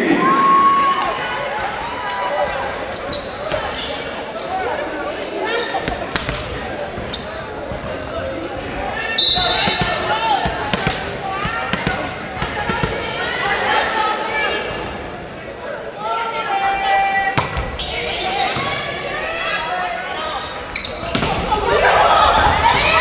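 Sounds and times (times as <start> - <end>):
voices in large hall: 0.0 - 23.0
shoes squeaking on court: 2.8 - 11.0, 17.4 - 19.0, 20.3 - 21.4.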